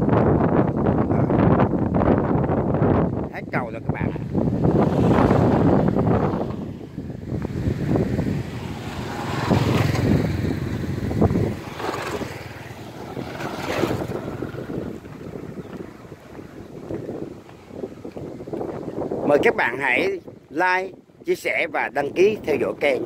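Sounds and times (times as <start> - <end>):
wind on microphone: 0.0 - 23.0
motorbike passing: 4.2 - 19.2.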